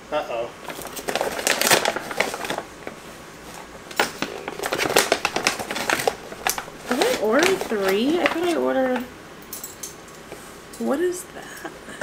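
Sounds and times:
paper bag crinkling and rustling: 0.6 - 9.1.

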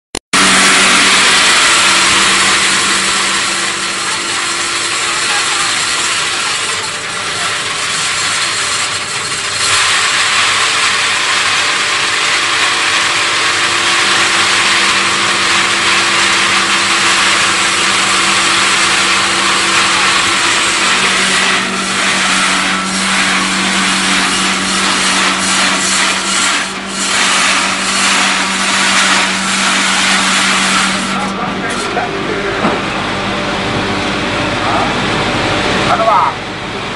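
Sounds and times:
hammer mill grinding grain: 0.4 - 36.4
motor hum: 0.4 - 36.9.

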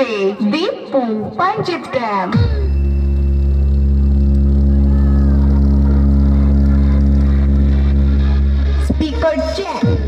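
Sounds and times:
deep bass tone from speakers: 2.3 - 10.0.

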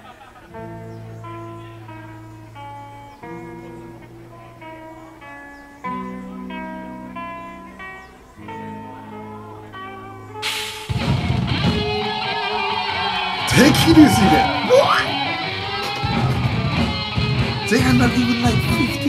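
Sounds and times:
clean guitar melody: 0.5 - 19.0
rock band with drums: 10.4 - 19.0.

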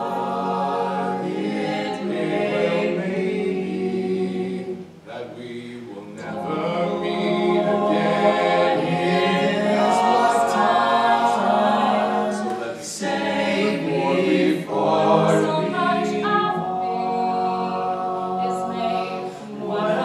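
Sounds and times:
a cappella group singing in harmony: 0.0 - 20.0.

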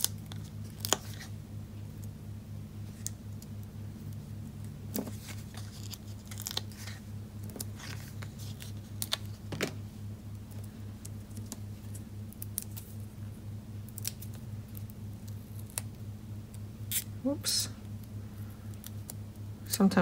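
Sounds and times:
paper sheet crinkles and clicks: 0.0 - 1.3, 4.9 - 9.8
steady low hum: 0.0 - 20.0.

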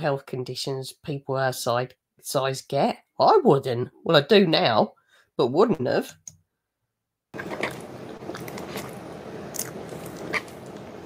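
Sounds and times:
chewing fries: 7.4 - 11.0.

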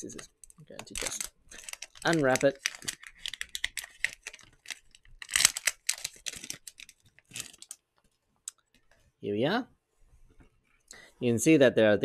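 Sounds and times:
plastic packaging crinkling and tearing: 0.8 - 7.8.

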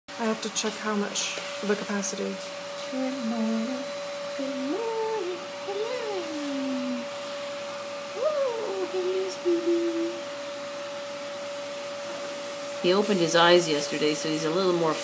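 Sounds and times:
steady high hum: 0.1 - 15.0
person cooing: 3.0 - 3.8.

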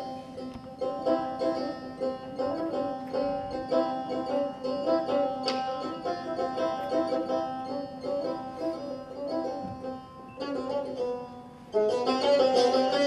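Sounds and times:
plucked lute runs: 0.0 - 13.0.

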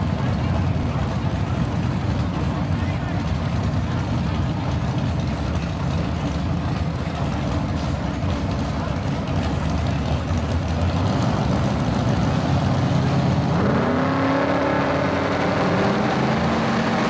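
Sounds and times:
crowd voices: 0.0 - 17.0
race car engines rumbling: 0.0 - 17.0.

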